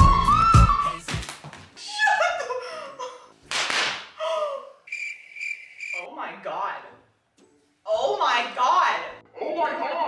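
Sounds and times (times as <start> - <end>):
cricket chirp sound effect: 4.9 - 6.1.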